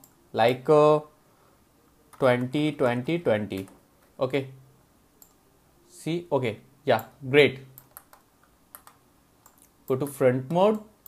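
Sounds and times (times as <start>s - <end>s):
person speaking: 0.3s - 1.2s, 2.1s - 4.7s, 5.8s - 7.9s, 9.8s - 11.0s
keyboard and mouse clicks: 3.5s - 4.1s, 7.0s - 10.9s.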